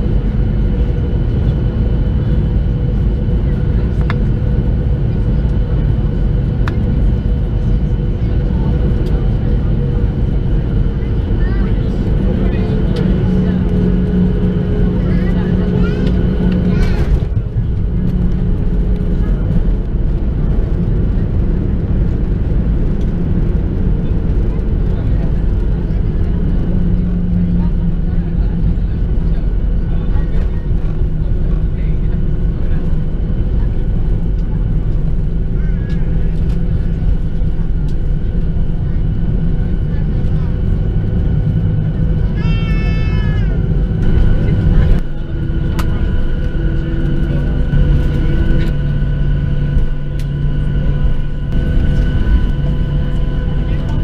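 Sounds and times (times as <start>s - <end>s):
aircraft rolling on runway rumble: 0.0s - 54.0s
jet engine whine: 0.0s - 54.0s.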